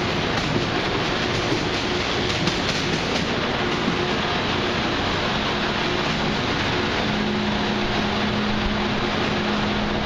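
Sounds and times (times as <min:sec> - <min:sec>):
train equipment whir: 0:00.0 - 0:10.0.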